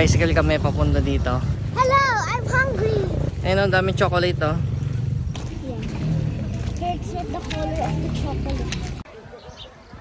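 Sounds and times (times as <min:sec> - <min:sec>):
footsteps in wet mud: 0:04.8 - 0:10.0.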